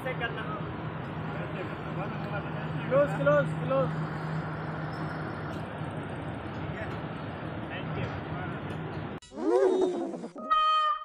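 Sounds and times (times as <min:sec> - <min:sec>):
steady outdoor noise: 0:00.0 - 0:10.6.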